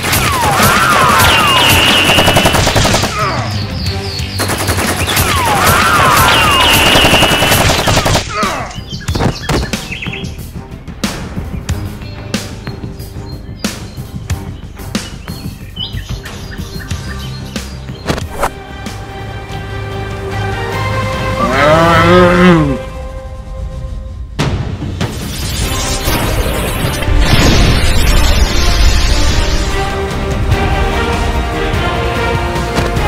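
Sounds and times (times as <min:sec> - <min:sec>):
background music: 0:00.0 - 0:33.0
person roaring: 0:21.4 - 0:22.9.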